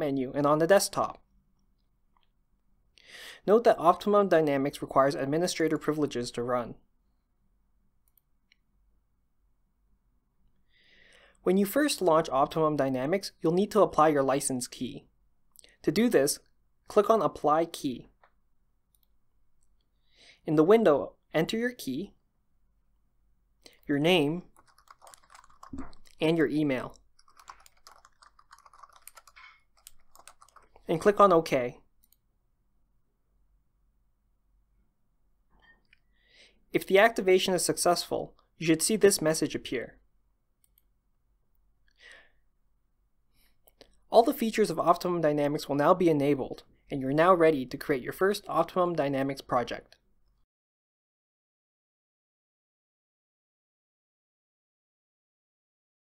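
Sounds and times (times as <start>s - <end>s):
person speaking: 0.0s - 1.3s, 3.2s - 6.8s, 11.4s - 18.2s, 20.3s - 22.2s, 23.6s - 32.2s, 36.7s - 40.0s, 43.7s - 50.0s
faint breath: 3.0s - 3.4s, 10.6s - 11.4s, 20.0s - 20.4s, 35.6s - 36.7s, 41.9s - 42.5s
computer mouse clicks: 26.9s - 30.9s.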